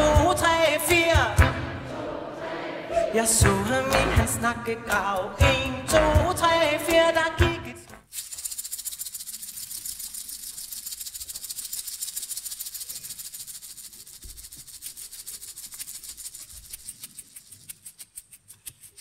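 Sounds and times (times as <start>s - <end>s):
hand shaker rhythm: 0.0s - 1.7s, 3.3s - 19.0s.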